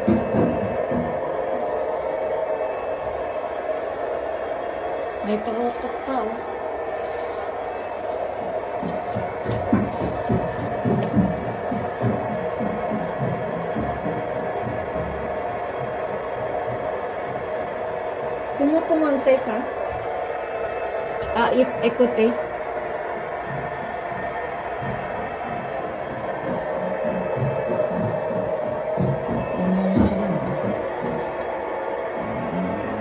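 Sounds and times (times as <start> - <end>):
steady mechanical hum: 0.0 - 33.0.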